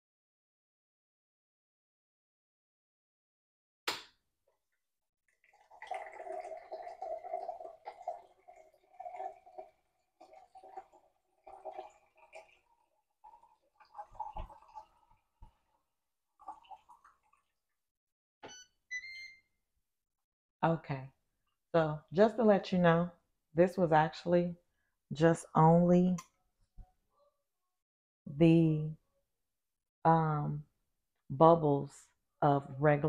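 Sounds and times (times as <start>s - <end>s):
carbonated water pouring and fizzing: 5.3s - 17.8s.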